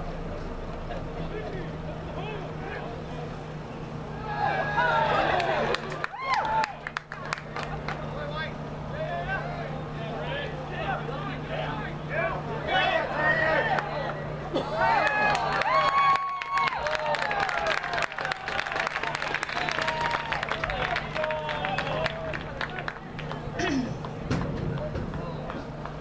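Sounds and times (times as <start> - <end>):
steady low hum: 0.0 - 26.0
voices shouting and calling: 1.0 - 25.8.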